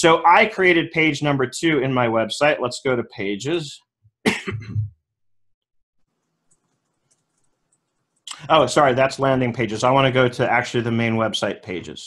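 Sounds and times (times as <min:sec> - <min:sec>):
man coughing: 0:04.2 - 0:04.9.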